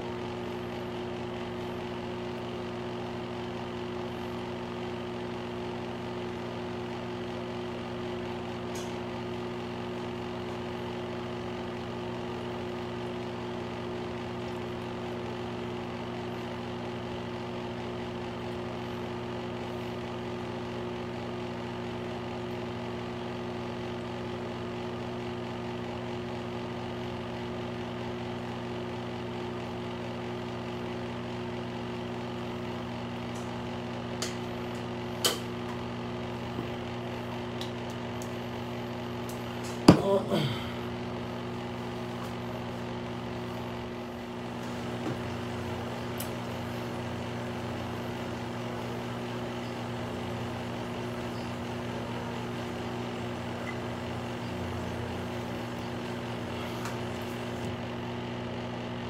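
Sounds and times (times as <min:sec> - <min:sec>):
steady machine hum: 0:00.0 - 0:59.0.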